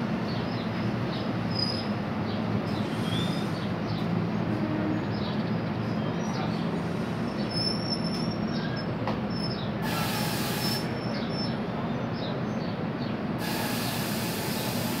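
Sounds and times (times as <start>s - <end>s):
train coaches rumbling on rails: 0.0s - 15.0s
wheel squeals: 7.4s - 11.6s.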